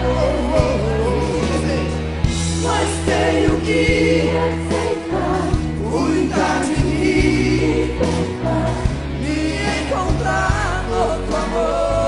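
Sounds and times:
crowd singing along: 0.0s - 12.0s
live band with bass line: 0.0s - 12.0s
man singing lead vocal: 0.0s - 12.0s.

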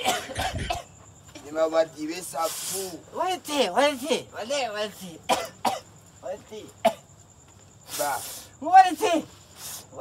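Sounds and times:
person coughing: 0.0s - 0.9s, 5.3s - 5.8s
throat clearing: 0.0s - 0.9s
breathy hiss: 2.2s - 3.2s, 7.7s - 10.0s.

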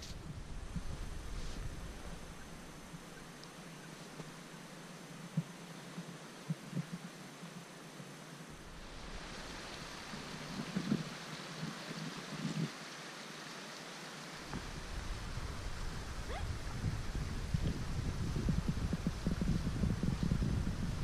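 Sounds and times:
wind buffeting microphone: 0.0s - 3.2s, 8.6s - 12.7s, 14.4s - 21.0s.

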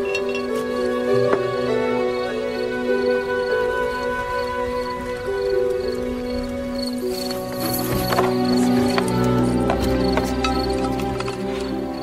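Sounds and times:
music with long held tones: 0.0s - 12.0s.

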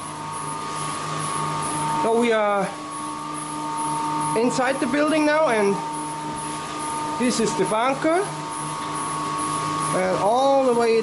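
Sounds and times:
turbine machinery humming: 0.0s - 11.0s.

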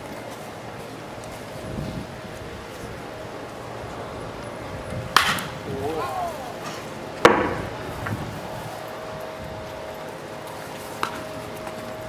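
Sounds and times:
bat hitting baseball: 5.1s - 5.6s, 6.6s - 7.8s
person shouting: 5.7s - 6.8s.

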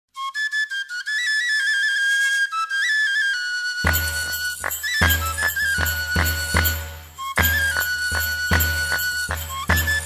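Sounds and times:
solo flute melody: 0.1s - 10.0s.

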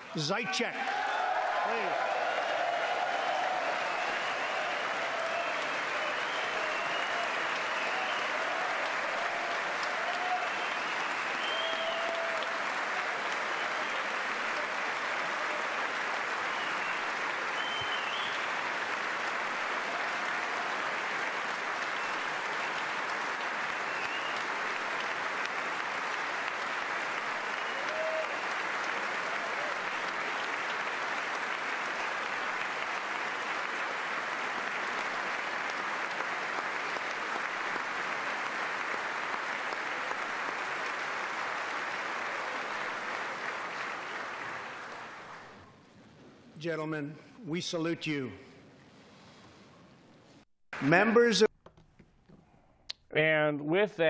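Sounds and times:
large audience applauding: 0.0s - 45.7s, 50.8s - 51.5s.

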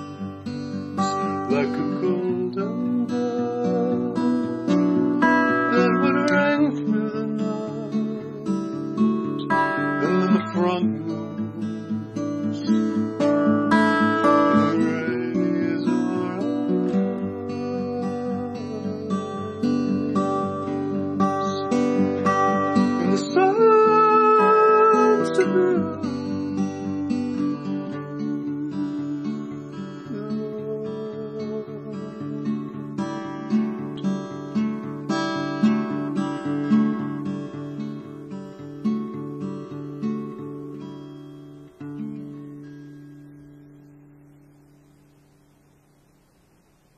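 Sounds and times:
solo acoustic guitar: 0.0s - 46.9s.

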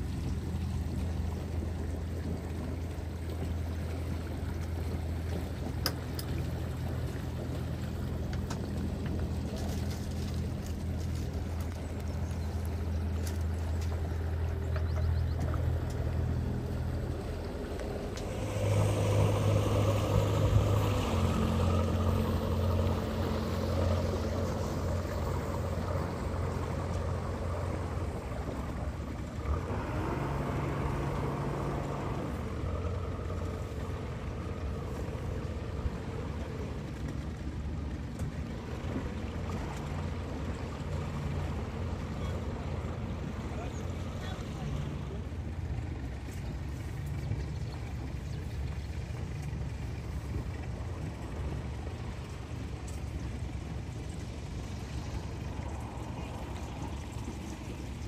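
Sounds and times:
boat engine humming: 0.0s - 58.0s.

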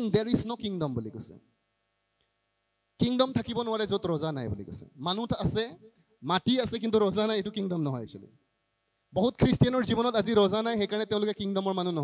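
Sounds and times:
faint electrical hum: 0.0s - 12.0s
man's voice: 3.0s - 8.3s, 9.2s - 12.0s.

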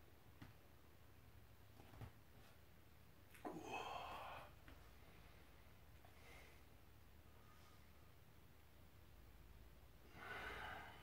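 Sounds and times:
person breathing out: 10.1s - 11.0s.

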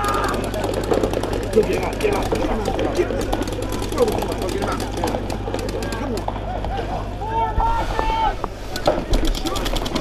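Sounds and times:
people shouting: 0.0s - 0.8s
paintball marker firing rapidly: 0.0s - 6.3s, 8.8s - 10.0s.

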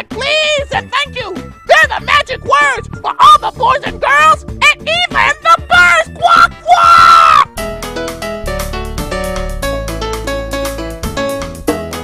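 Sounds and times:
high cartoonish voice yelling: 0.0s - 7.5s.

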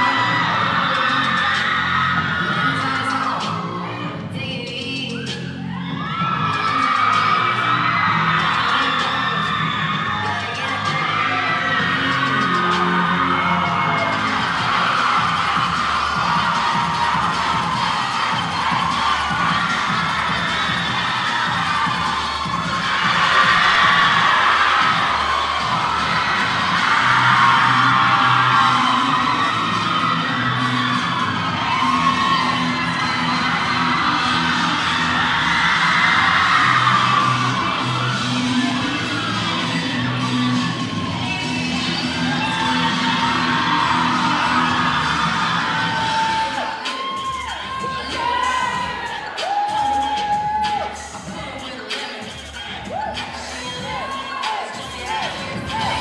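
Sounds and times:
audience cheering and shouting: 0.0s - 56.0s
loud dance music: 0.0s - 56.0s.

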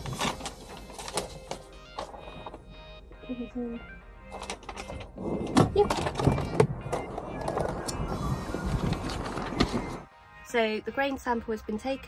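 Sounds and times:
paper rustling: 0.0s - 2.6s, 7.3s - 10.1s
background music: 0.0s - 12.0s.

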